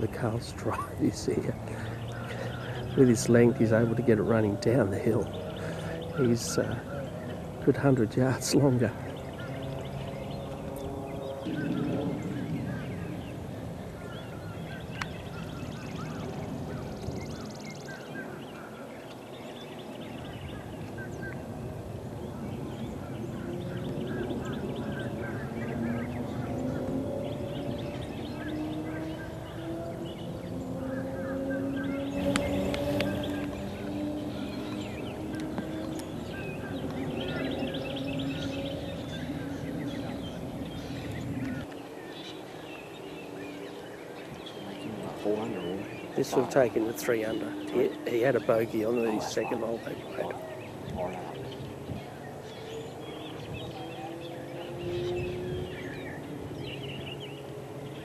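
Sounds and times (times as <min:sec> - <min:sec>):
birds chirping: 0:00.0 - 0:58.0
low rising drone: 0:00.0 - 0:58.0.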